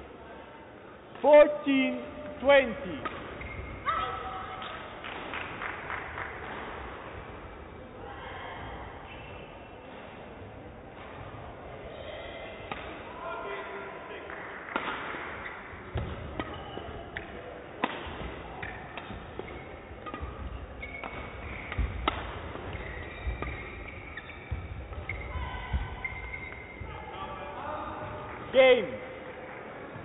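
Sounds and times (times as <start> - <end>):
rackets hitting shuttlecock: 2.2 - 7.4, 12.6 - 13.1, 14.6 - 26.9.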